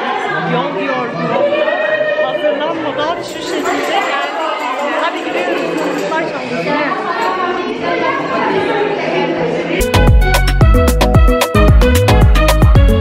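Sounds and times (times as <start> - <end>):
crowd chatter: 0.0 - 10.9.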